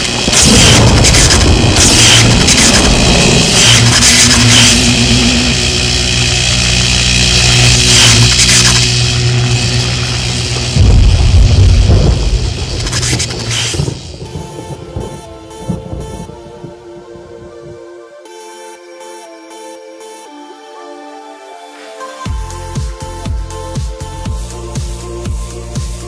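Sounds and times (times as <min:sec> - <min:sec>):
electrical sparks crackling: 0:00.0 - 0:16.8
steady low hum: 0:00.0 - 0:17.9
deep boom: 0:09.1 - 0:16.4.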